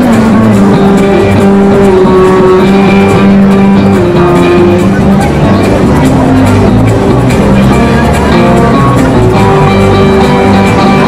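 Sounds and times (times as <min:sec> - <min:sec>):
live country band music: 0:00.0 - 0:11.0.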